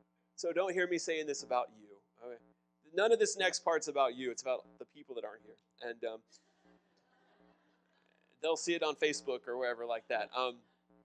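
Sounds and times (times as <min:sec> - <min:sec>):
man saying um: 0:00.4 - 0:02.4, 0:03.0 - 0:06.2, 0:08.4 - 0:10.5.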